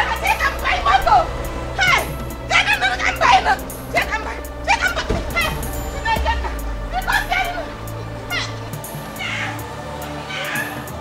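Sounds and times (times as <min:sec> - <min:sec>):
film music with ticking beat: 0:00.0 - 0:11.0
wavering high vocal sweeps: 0:00.0 - 0:11.0.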